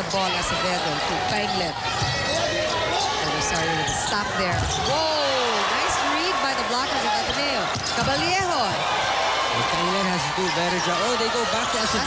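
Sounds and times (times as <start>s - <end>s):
crowd din: 0.0s - 12.0s
voices shouting: 0.0s - 12.0s.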